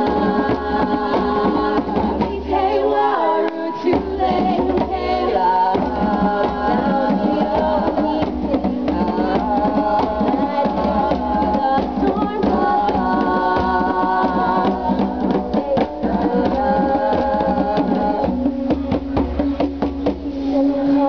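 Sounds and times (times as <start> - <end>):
hand drums beating: 0.0 - 2.7, 3.8 - 20.7
women singing together: 0.0 - 19.2, 20.0 - 21.0.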